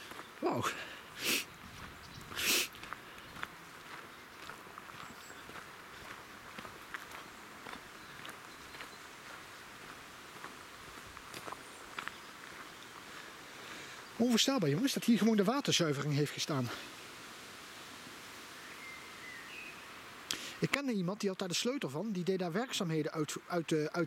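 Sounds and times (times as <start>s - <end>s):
close breaths: 0.0s - 4.0s, 5.8s - 6.4s, 12.5s - 14.2s, 16.7s - 17.1s, 20.3s - 20.7s
footsteps crunching on gravel: 0.0s - 12.9s.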